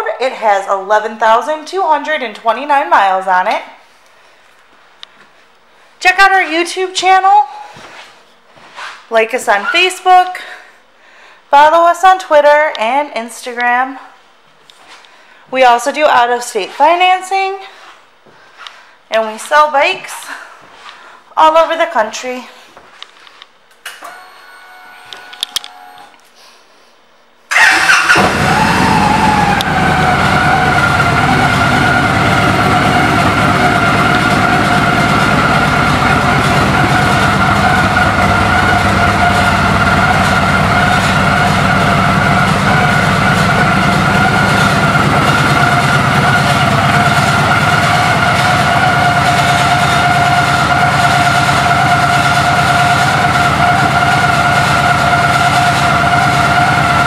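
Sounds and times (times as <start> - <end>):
motorcycle engine starting and idling: 27.5 - 57.0
steady high whine: 28.2 - 57.0.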